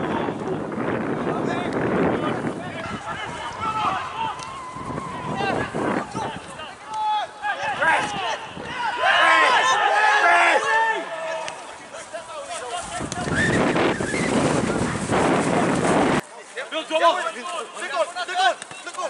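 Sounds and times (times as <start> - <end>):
rush of noise with voices: 0.0 - 18.5
players and spectators shouting: 2.2 - 13.4.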